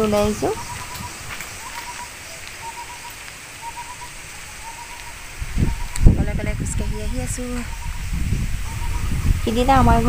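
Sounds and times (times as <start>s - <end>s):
noisy hiss: 0.0s - 10.0s
microphone rumbling: 5.2s - 10.0s.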